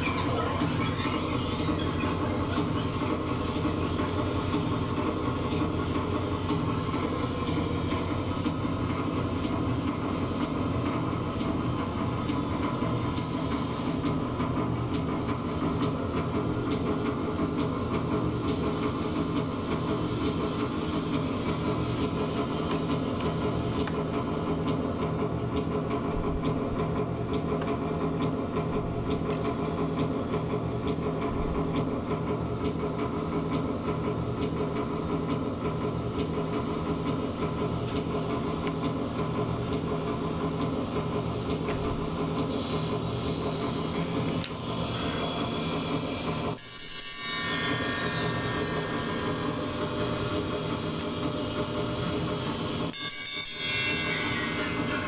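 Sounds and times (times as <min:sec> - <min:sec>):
dense industrial noise drone: 0:00.0 - 0:24.6, 0:35.6 - 0:55.0.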